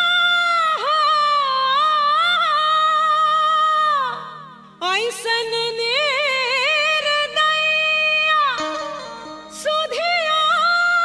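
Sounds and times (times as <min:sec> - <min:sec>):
soft steady accompaniment: 0:00.0 - 0:11.0
woman singing folk song: 0:00.0 - 0:11.0.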